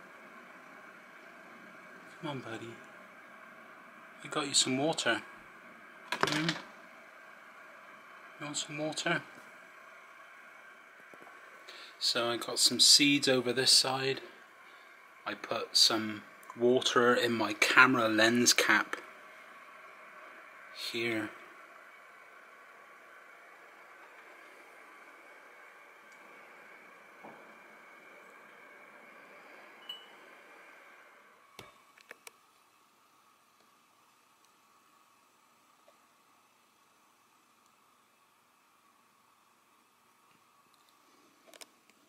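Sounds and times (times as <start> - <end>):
steady hum: 0.0 - 42.0.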